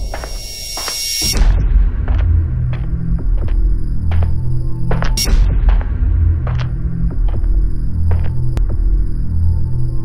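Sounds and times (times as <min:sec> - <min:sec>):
deep pulsing bass theme music: 0:00.0 - 0:10.0.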